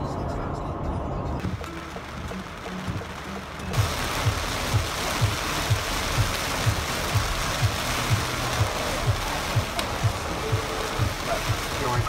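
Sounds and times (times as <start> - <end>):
background music with drum beat: 1.4 - 12.0
heavy rain on a car: 1.4 - 12.0.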